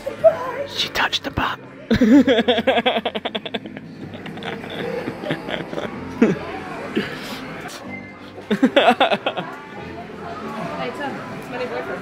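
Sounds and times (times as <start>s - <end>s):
murmur of busy indoor hall: 0.0s - 12.0s
people laughing: 1.9s - 7.5s, 8.3s - 9.7s.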